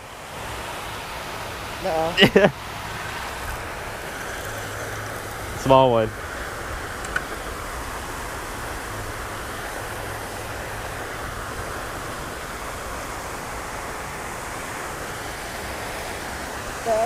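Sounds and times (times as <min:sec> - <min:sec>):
fountain water spraying and falling: 0:00.0 - 0:17.0.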